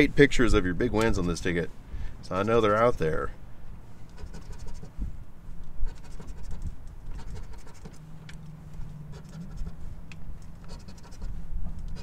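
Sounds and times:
coin scratching lottery ticket: 0:04.1 - 0:05.0, 0:05.9 - 0:08.0, 0:09.1 - 0:09.8, 0:10.6 - 0:12.0.

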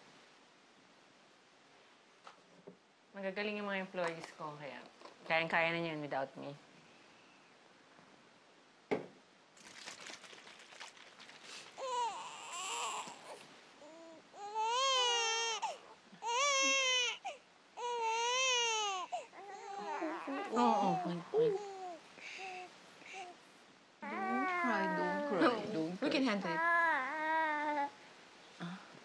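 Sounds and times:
newborn baby crying: 0:11.8 - 0:23.4, 0:24.0 - 0:25.7, 0:26.4 - 0:28.0
woman cooing baby talk: 0:19.6 - 0:21.8, 0:24.0 - 0:25.8.

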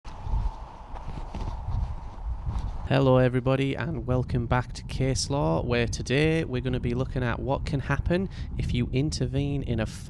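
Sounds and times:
footsteps on soft ground: 0:00.1 - 0:03.3.

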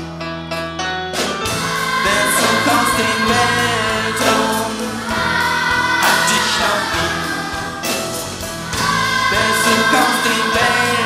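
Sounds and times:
live pop-rock band with guitars: 0:00.0 - 0:11.0
children's choir singing: 0:01.5 - 0:11.0.

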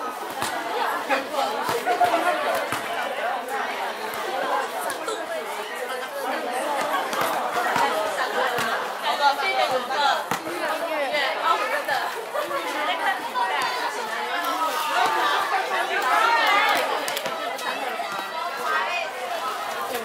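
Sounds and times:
students chattering: 0:00.0 - 0:20.0.

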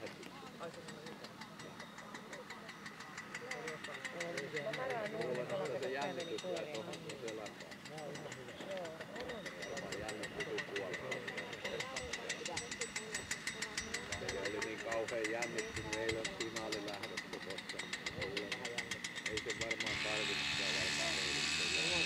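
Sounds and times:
engine running: 0:00.0 - 0:22.0
people talking: 0:00.0 - 0:22.0.

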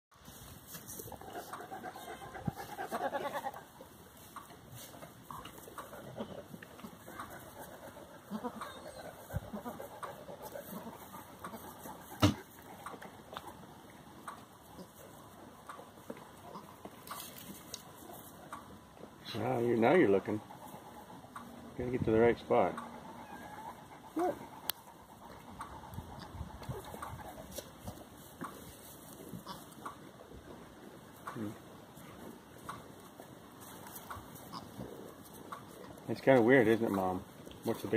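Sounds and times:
goats shifting in straw: 0:00.2 - 0:07.9, 0:16.9 - 0:18.4, 0:26.8 - 0:29.8, 0:32.0 - 0:37.9
soft goat calls: 0:00.9 - 0:03.9, 0:04.8 - 0:13.4, 0:22.5 - 0:28.0, 0:33.7 - 0:35.1
goats bleating: 0:01.2 - 0:03.7, 0:08.2 - 0:09.9.

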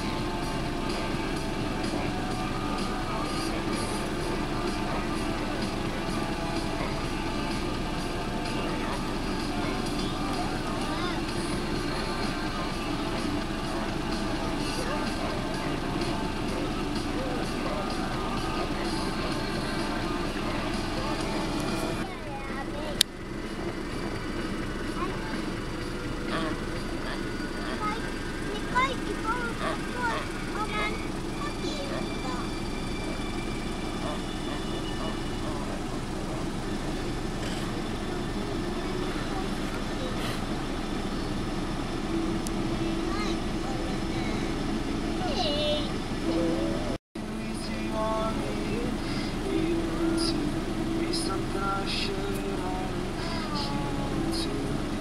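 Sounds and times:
car engine idling: 0:00.0 - 0:55.0.

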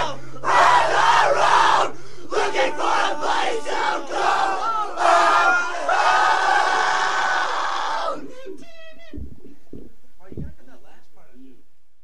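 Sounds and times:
crowd yelling and shouting: 0:00.0 - 0:08.6.

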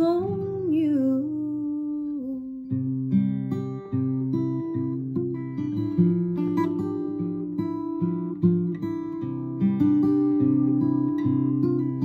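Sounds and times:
woman singing: 0:00.0 - 0:02.9
acoustic guitar strumming: 0:02.7 - 0:12.0.

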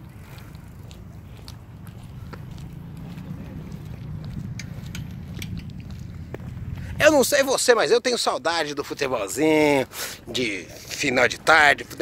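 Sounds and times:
wind rumble on microphone: 0:00.0 - 0:07.6.

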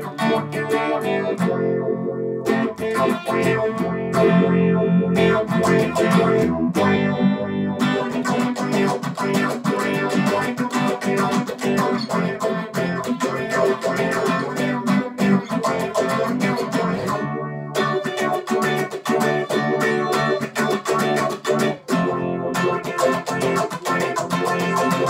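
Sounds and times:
electric guitar tremolo picking: 0:00.0 - 0:25.0.

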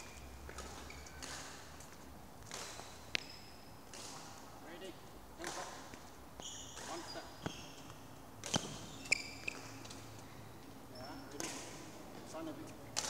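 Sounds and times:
shoes squeaking on hall floor: 0:00.0 - 0:04.4, 0:05.4 - 0:12.9.

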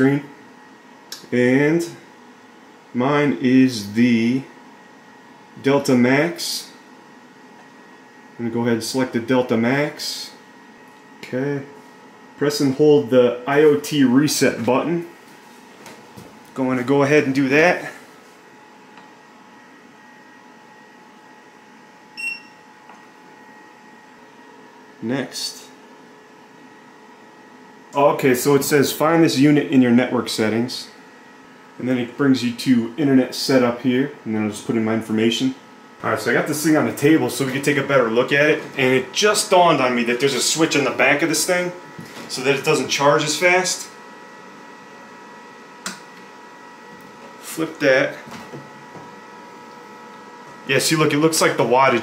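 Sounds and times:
power unit humming: 0:00.0 - 0:52.0
sharp click: 0:45.8 - 0:46.3.

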